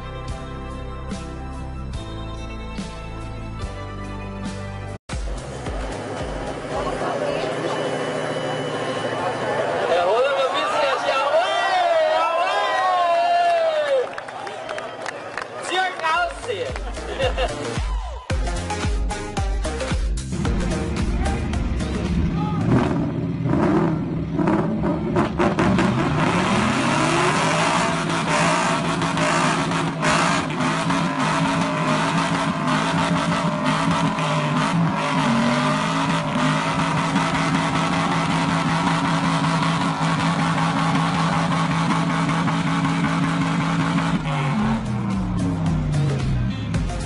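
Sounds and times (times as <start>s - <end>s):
car engines revving: 5.2s - 12.8s, 19.7s - 47.0s.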